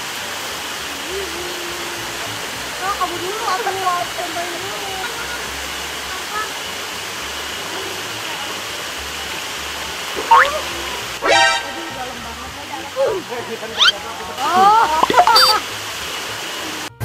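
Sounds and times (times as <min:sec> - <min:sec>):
waterfalls pouring into pool: 0:00.0 - 0:17.0.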